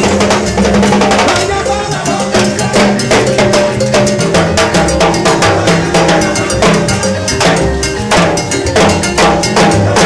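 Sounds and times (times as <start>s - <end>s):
cowbell struck quickly: 0.0s - 10.0s
salsa band playing: 0.0s - 10.0s.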